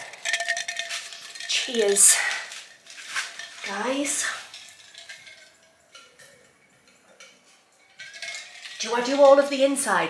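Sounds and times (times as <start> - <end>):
soft rustle: 0.0 - 6.1.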